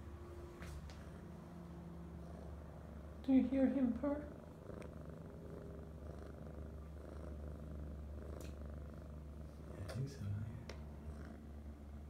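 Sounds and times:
kitten purring: 2.0s - 12.0s.

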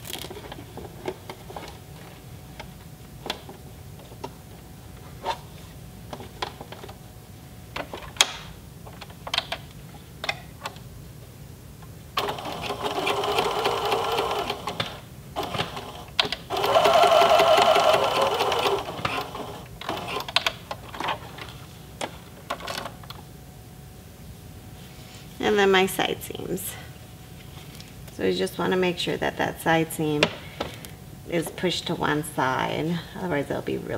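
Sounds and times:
sewing machine stitching: 12.2s - 20.4s.

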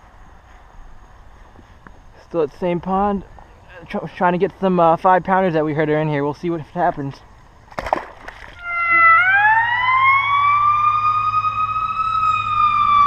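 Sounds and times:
emergency vehicle siren wailing: 8.6s - 13.0s.

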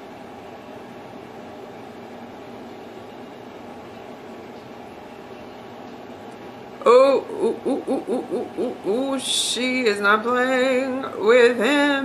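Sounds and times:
woman hooting: 6.8s - 10.0s.

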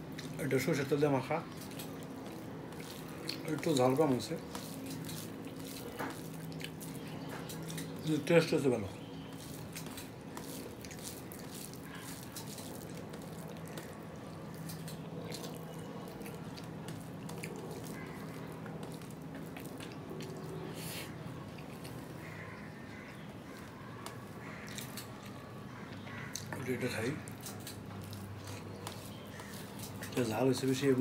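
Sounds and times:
steady low hum: 0.0s - 31.0s
wet chewing: 0.0s - 31.0s
fingers mixing food on steel plate: 0.1s - 20.7s, 27.2s - 31.0s.

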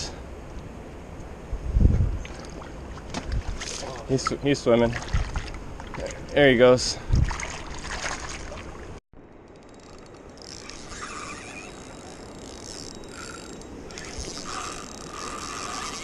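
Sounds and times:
fishing reel drag clicking: 9.4s - 16.0s.

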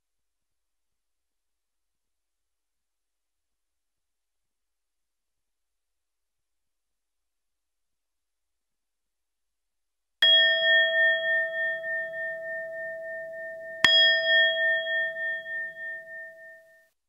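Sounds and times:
bell-like chime ringing: 10.2s - 16.8s.

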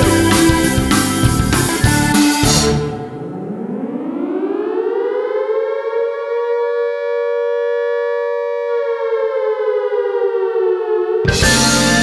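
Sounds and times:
air-raid siren wailing: 0.0s - 12.0s.

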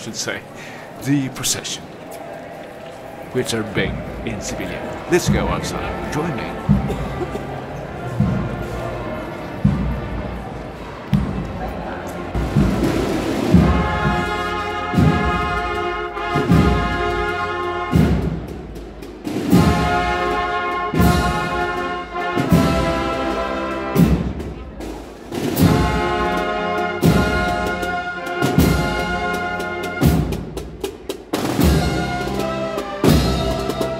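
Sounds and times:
brass band playing slow march: 0.8s - 33.9s.

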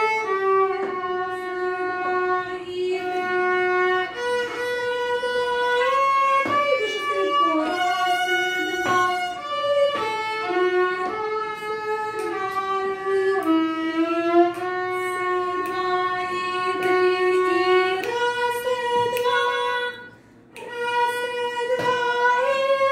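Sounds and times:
violin playing bowed melody: 0.0s - 22.9s.

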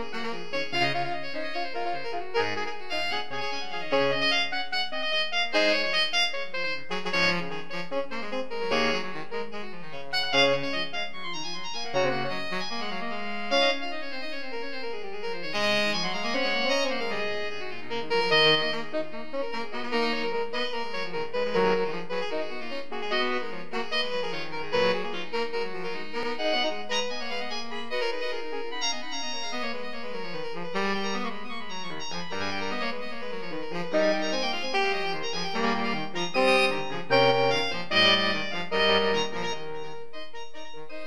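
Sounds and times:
saxophone quartet playing: 0.0s - 2.7s, 8.7s - 11.1s, 11.8s - 14.4s, 15.6s - 41.0s.

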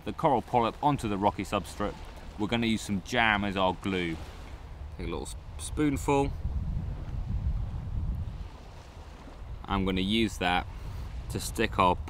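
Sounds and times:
wind buffeting microphone: 0.6s - 12.0s.

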